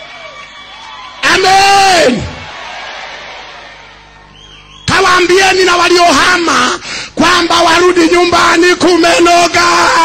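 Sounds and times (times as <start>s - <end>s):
congregation clapping: 0.0s - 3.9s.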